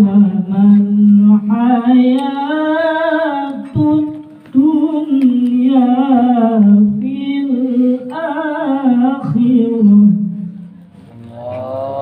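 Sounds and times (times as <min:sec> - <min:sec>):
man chanting into a microphone: 0:11.1 - 0:12.0.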